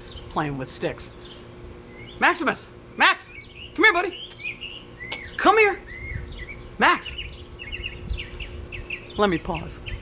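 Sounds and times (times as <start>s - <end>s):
low background rumble: 0.0s - 10.0s
small birds chirping: 0.0s - 10.0s.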